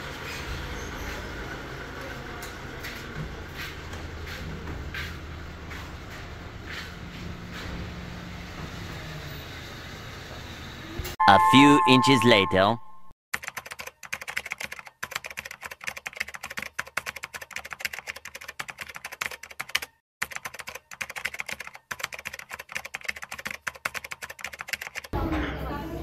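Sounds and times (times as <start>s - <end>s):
steady background sound: 11.2s - 13.1s
rapid keyboard typing clicks: 13.4s - 25.2s.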